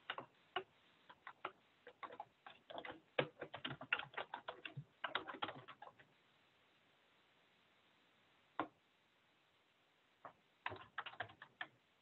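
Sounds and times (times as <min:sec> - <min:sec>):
computer keyboard typing: 0:00.0 - 0:06.1, 0:10.6 - 0:11.8.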